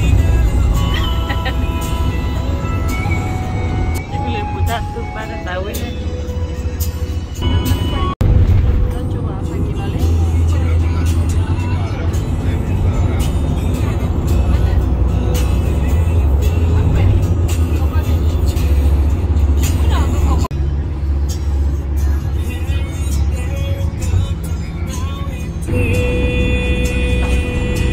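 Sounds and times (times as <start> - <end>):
road and engine rumble: 0.0 - 27.9.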